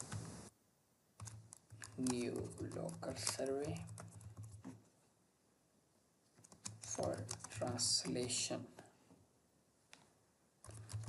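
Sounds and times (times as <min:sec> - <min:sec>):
computer keyboard keystrokes: 0:01.2 - 0:04.8, 0:06.3 - 0:08.5, 0:10.6 - 0:11.0.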